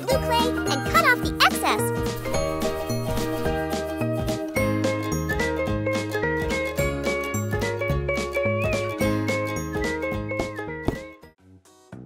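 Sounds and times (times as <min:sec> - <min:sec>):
cheerful children's music: 0:00.0 - 0:11.4.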